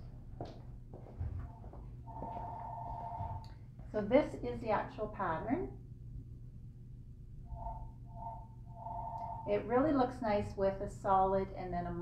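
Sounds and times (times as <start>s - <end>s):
low background hum: 0.0s - 12.0s
electronic telephone ringing: 2.1s - 3.4s, 7.6s - 9.5s.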